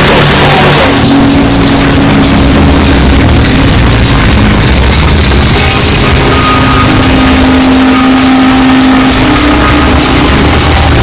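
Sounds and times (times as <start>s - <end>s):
distorted song: 0.0s - 11.0s
steady low tone: 0.0s - 11.0s.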